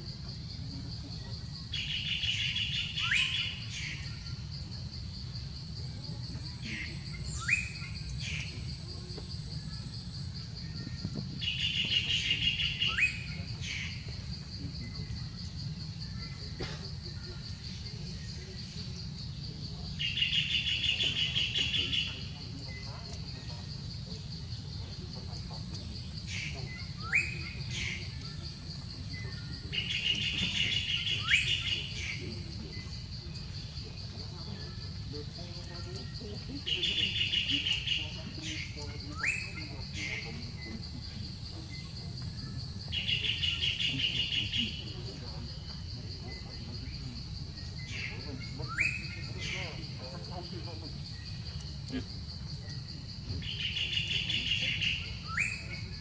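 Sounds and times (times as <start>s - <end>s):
bird chatter: 11.4s - 56.0s.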